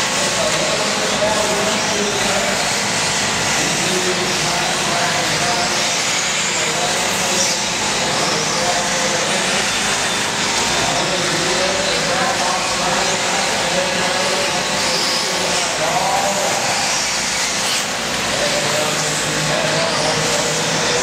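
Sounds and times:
electric motors whining: 0.0 - 21.0
indistinct voices: 0.0 - 21.0.

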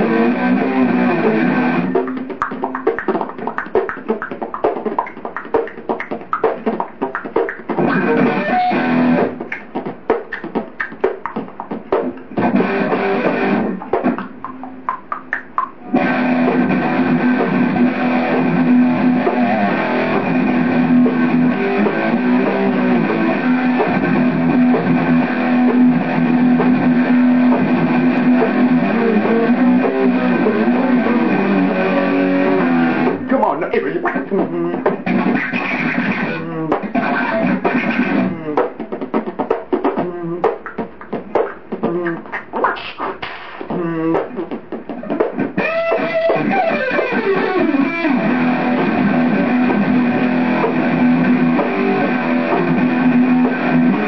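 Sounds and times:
guitar strumming: 0.0 - 54.0.

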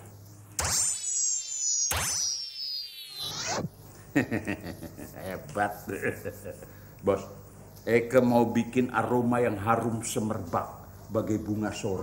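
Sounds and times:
shimmering tone gliding downward: 0.9 - 3.7.

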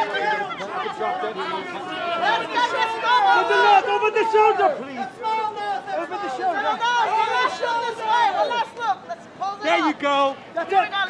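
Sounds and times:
men shouting over one another: 0.0 - 10.0.

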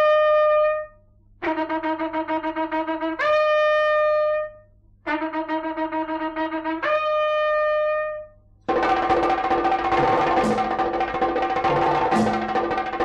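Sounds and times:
conch shell blasts: 8.7 - 13.0.

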